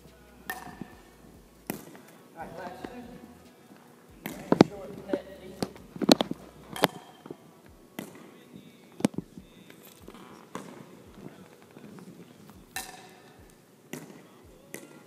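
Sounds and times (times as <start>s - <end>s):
paddle striking plastic ball: 12.7s - 13.2s.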